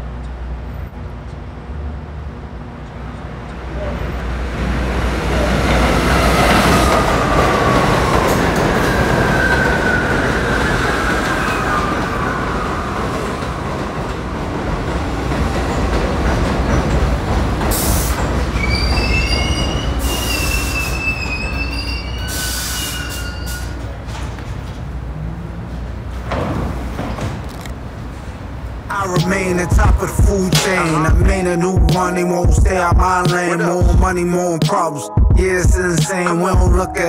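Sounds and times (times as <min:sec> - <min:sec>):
train wheels rumbling on rails: 0:00.0 - 0:34.4
brake and wheel squeals: 0:17.8 - 0:24.0.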